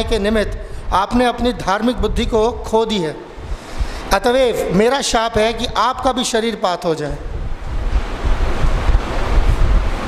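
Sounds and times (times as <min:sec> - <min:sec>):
wind on microphone: 0:00.0 - 0:06.2, 0:07.2 - 0:10.0.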